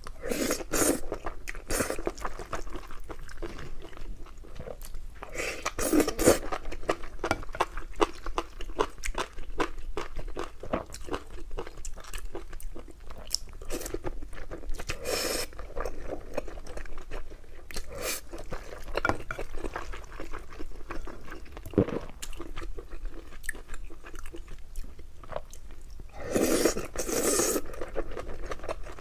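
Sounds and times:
person chewing food: 0:00.0 - 0:29.0.

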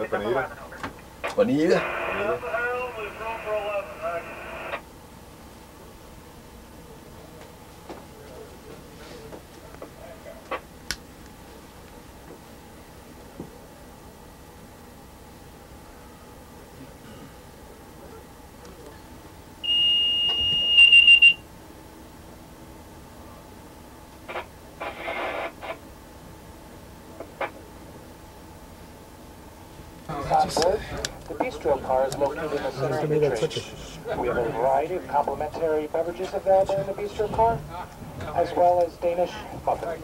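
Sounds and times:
train cab background noise: 0:00.0 - 0:40.0
voice over two-way radio: 0:00.4 - 0:04.8
high-pitched electronic warning tone: 0:19.6 - 0:21.4.

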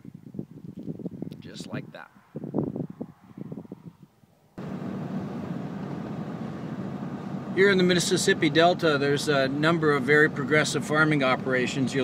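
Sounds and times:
vehicle engine hum and road noise: 0:02.8 - 0:12.0.

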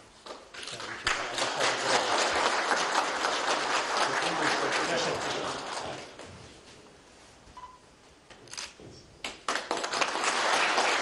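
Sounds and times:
people applauding: 0:00.6 - 0:06.2, 0:09.2 - 0:11.0.

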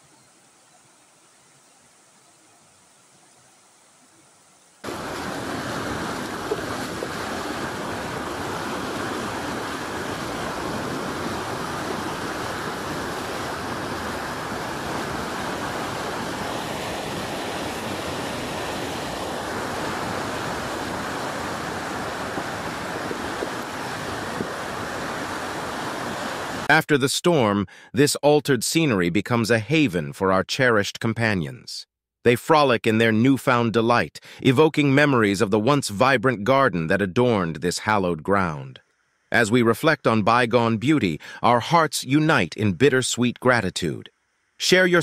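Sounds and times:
floodwater roaring: 0:04.8 - 0:26.7.

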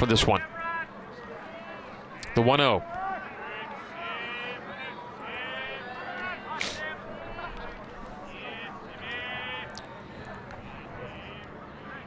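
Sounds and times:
crowd in stands: 0:00.0 - 0:12.0.

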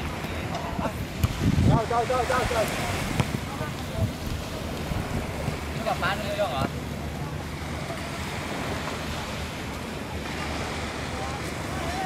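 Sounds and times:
gentle surf: 0:00.0 - 0:12.0
wind on microphone: 0:00.0 - 0:12.0
voices talking: 0:00.2 - 0:12.0.

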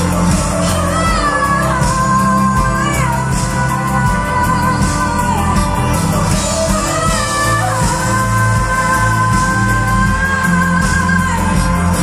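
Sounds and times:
band accompaniment: 0:00.0 - 0:12.0.

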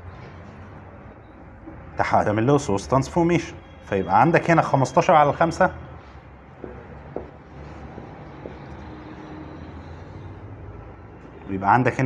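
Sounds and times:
marker writing on whiteboard: 0:01.5 - 0:02.0, 0:06.1 - 0:11.4.

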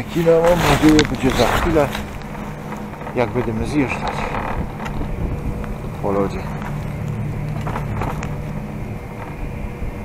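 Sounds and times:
chairlift mechanical hum: 0:00.0 - 0:10.0
wind noise on microphone: 0:00.0 - 0:10.0.

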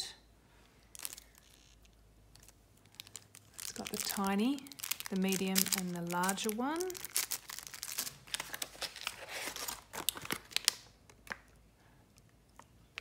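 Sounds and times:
plastic packaging crinkling: 0:00.8 - 0:11.6.

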